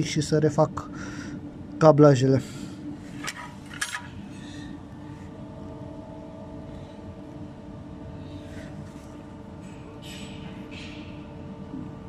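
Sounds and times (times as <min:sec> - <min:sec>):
steady faint hum: 0:00.0 - 0:12.0.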